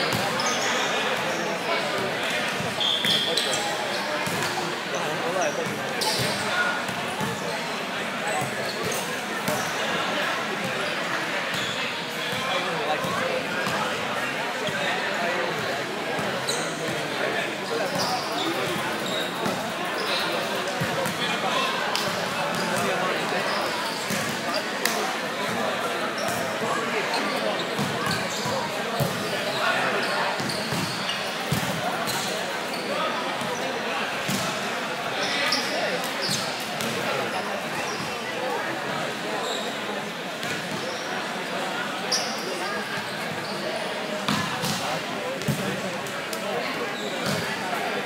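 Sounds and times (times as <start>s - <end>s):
hubbub of many voices: 0.0s - 48.0s.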